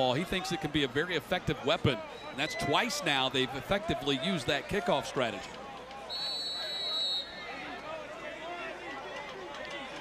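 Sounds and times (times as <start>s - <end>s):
stadium crowd murmur: 0.0s - 10.0s
referee whistle: 6.1s - 7.5s.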